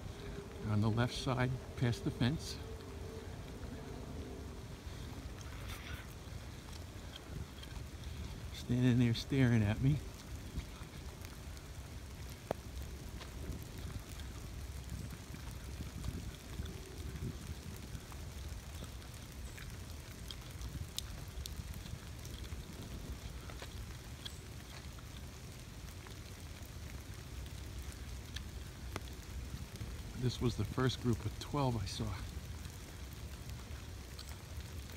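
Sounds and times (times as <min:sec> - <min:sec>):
steady rain falling: 0:00.0 - 0:34.9.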